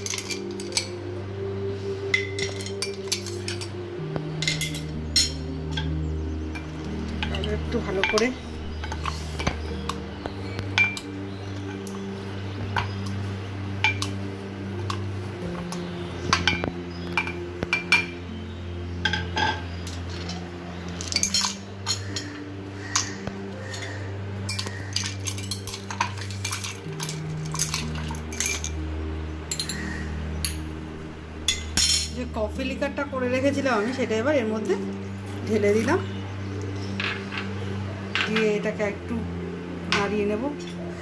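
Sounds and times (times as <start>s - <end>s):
ice and spoon clinking glass: 0.0s - 1.0s, 2.1s - 3.8s, 4.4s - 6.0s, 21.0s - 22.4s, 24.5s - 28.8s, 29.5s - 29.8s, 31.5s - 32.2s
low musical drone: 0.0s - 41.0s
muddler clinking against glass: 24.5s - 28.8s.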